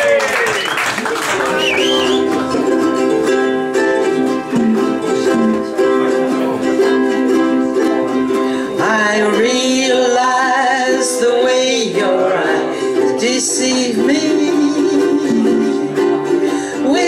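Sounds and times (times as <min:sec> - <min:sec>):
ukuleles strumming chords: 0:00.0 - 0:17.0.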